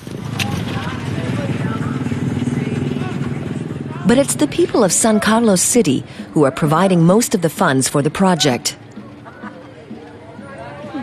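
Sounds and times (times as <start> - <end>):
motorcycle engine running: 0.0 - 11.0
street traffic: 0.0 - 11.0
faint voices: 0.1 - 11.0.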